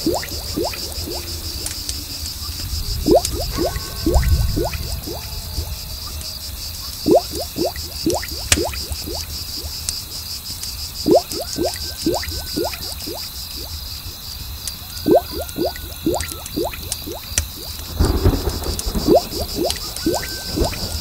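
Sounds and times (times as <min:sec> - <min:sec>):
bubbles popping: 0:00.0 - 0:01.7, 0:03.0 - 0:05.7, 0:07.0 - 0:09.8, 0:11.0 - 0:13.8, 0:15.1 - 0:17.8, 0:19.0 - 0:20.9
low rumble: 0:00.0 - 0:08.1
high insect chorus: 0:00.0 - 0:21.0.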